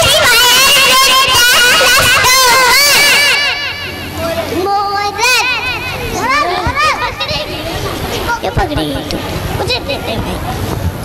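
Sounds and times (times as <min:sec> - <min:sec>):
children speaking and calling out: 0:00.0 - 0:10.5.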